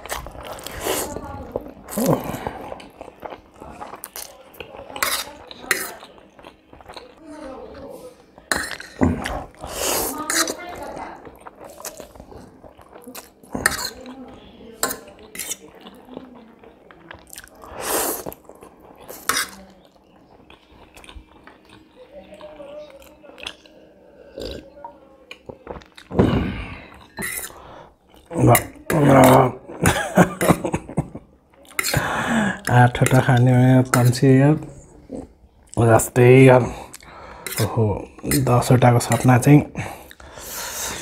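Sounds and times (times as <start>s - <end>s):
mouth sounds of eating: 0.0s - 41.0s
fork scraping ceramic plate: 5.0s - 6.0s, 9.6s - 10.6s, 13.6s - 14.1s, 14.8s - 15.7s, 19.1s - 19.6s, 27.2s - 27.6s.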